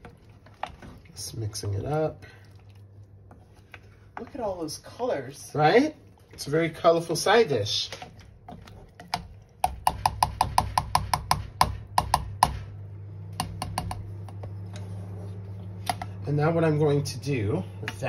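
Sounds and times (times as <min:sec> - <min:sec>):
low steady hum: 0:00.0 - 0:18.0
plastic spoon knocking saucepan: 0:09.6 - 0:12.6, 0:13.4 - 0:14.4.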